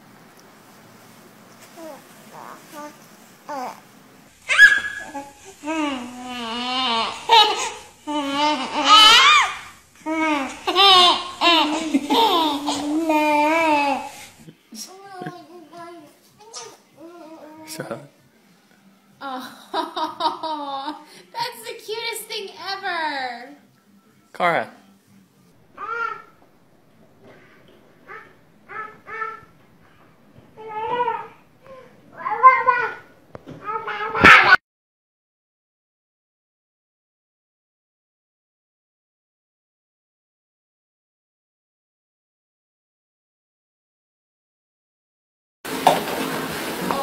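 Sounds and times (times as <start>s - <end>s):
baby babbling: 1.8s - 3.8s, 4.5s - 14.1s, 15.1s - 17.7s, 25.8s - 26.4s, 27.3s - 29.5s, 30.6s - 34.3s
toddler crying and shrieking: 4.5s - 14.1s, 25.8s - 26.3s, 28.1s - 29.5s, 30.6s - 33.0s, 33.6s - 34.6s.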